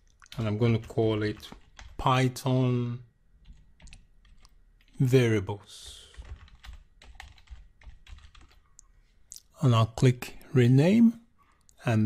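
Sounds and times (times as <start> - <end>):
computer keyboard typing: 0.4 - 2.2, 3.4 - 5.0, 5.8 - 8.8.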